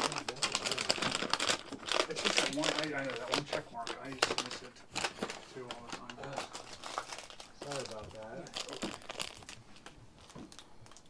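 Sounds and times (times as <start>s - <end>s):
wrapping paper crinkling: 0.0s - 11.0s.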